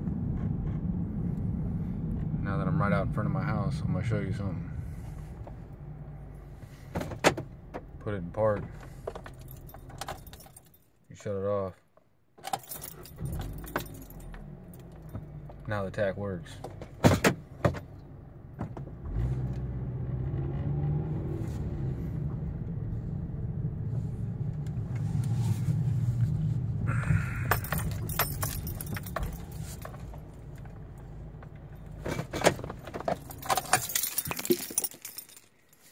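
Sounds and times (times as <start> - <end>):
keys jangling and clicking: 9.1 - 10.9, 12.4 - 15.1, 27.4 - 30.7, 31.7 - 35.9
car engine running: 16.5 - 34.7.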